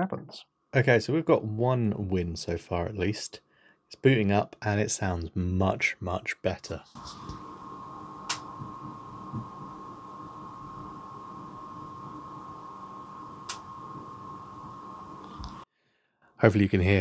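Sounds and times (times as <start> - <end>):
computer hum: 6.8 - 15.7
thin steady whine: 6.8 - 15.7.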